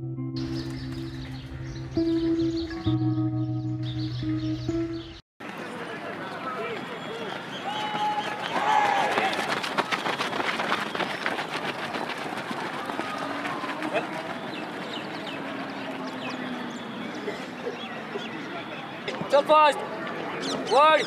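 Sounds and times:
footsteps running on dirt: 5.5s - 16.8s
men calling and chattering: 10.8s - 21.0s.

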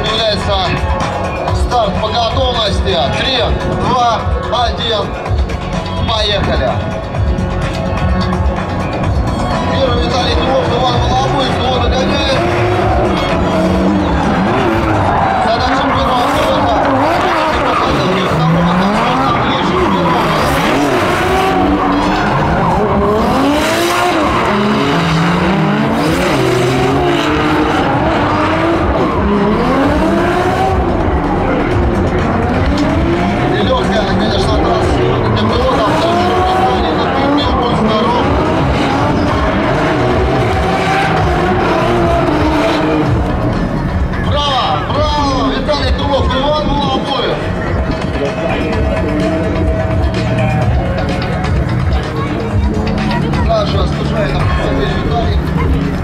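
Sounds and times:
car engines revving: 0.0s - 56.0s
tyres squealing on asphalt: 0.0s - 56.0s.

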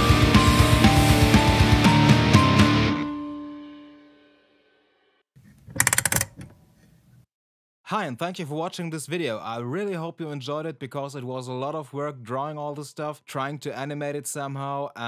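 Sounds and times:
rock band playing: 0.0s - 3.1s
rapid rattle of clicks: 5.6s - 6.5s.

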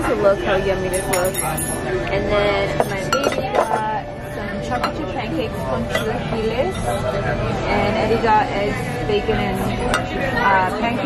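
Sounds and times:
dishes and glassware clinking: 0.9s - 2.0s, 2.7s - 4.0s, 5.8s - 6.3s, 9.8s - 10.6s.

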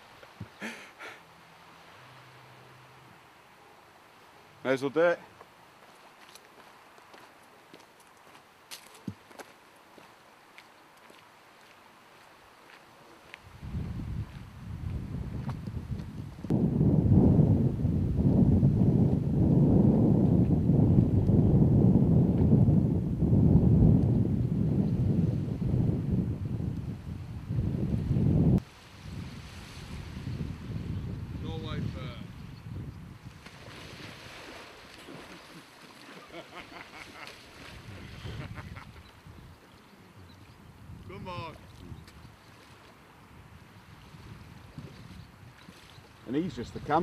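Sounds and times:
wind buffeting microphone: 13.4s - 35.4s, 37.5s - 47.0s.

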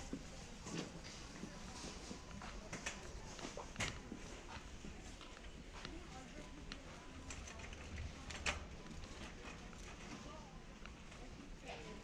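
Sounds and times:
indistinct voices of shoppers: 0.0s - 12.0s
small clicks and rattles: 7.2s - 11.3s.

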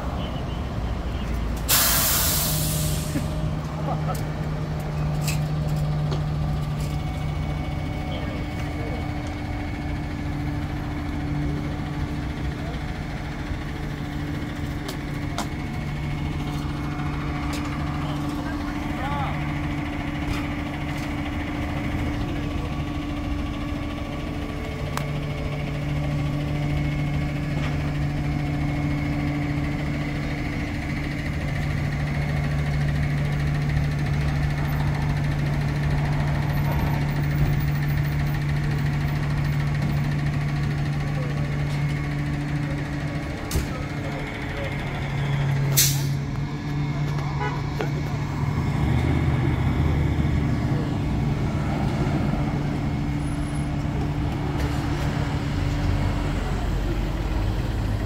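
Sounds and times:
street traffic: 0.0s - 58.0s
truck engine idling: 0.0s - 58.0s.

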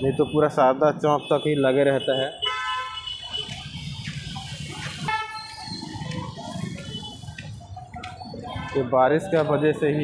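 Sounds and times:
city street traffic: 0.0s - 10.0s
vehicle horn honking: 2.1s - 3.5s, 5.1s - 5.4s.

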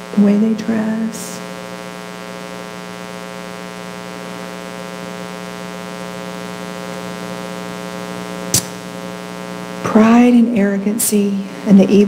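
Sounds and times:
electrical mains hum: 0.0s - 12.0s
sharp click: 8.5s - 8.8s.

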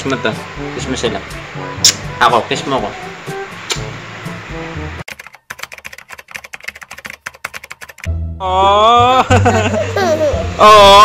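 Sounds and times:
background music with steady beat: 0.0s - 5.5s
keyboard typing clicks: 5.1s - 8.1s.

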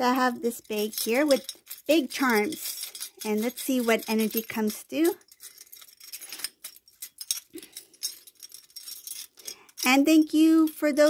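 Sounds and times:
charms jangling in cloth pouch: 0.0s - 11.0s.

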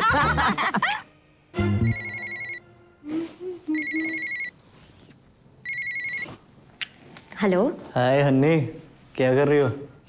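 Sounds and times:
mobile phone ringing: 1.7s - 2.6s, 3.8s - 4.6s, 5.6s - 6.4s.

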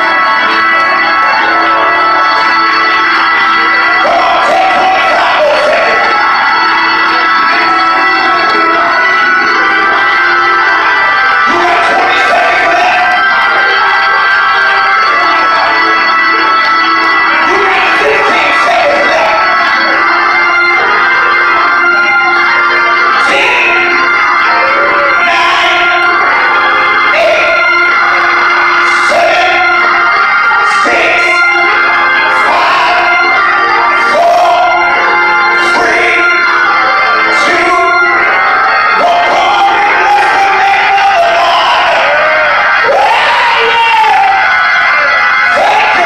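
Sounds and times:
electric organ playing chords: 0.0s - 46.0s
man singing through microphone: 3.9s - 6.4s, 11.1s - 14.8s, 17.3s - 20.4s, 23.1s - 46.0s.

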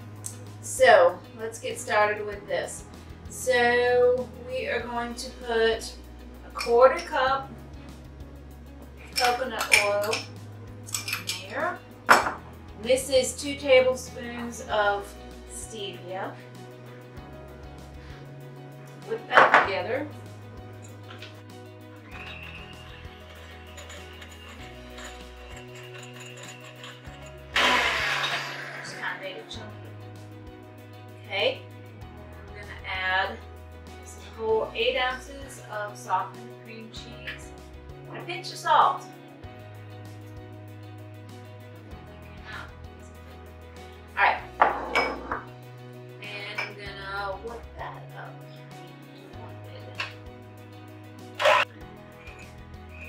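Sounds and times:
background music: 0.0s - 53.0s
electric hand mixer in glass bowl: 22.1s - 29.0s
glass salt shaker knocking: 22.2s - 27.4s.

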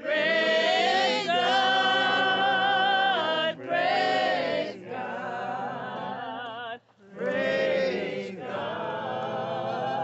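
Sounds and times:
choir singing with vibrato: 0.0s - 10.0s.

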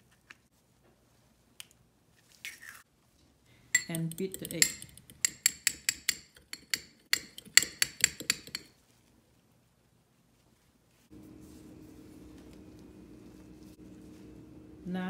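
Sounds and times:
fork clinking on glass bowl: 3.8s - 8.7s
low steady hum: 10.8s - 15.0s.

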